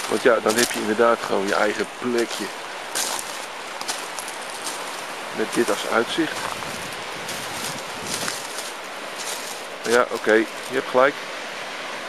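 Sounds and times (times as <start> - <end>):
man's voice: 0.0 - 2.5, 5.4 - 6.4, 9.9 - 11.1
sea surf on rocks: 0.0 - 12.0.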